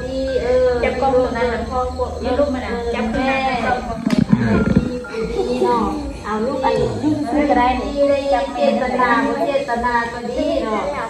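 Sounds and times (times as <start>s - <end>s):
people talking: 0.0s - 11.0s
low rough vocal sound: 3.7s - 5.4s, 6.6s - 7.5s.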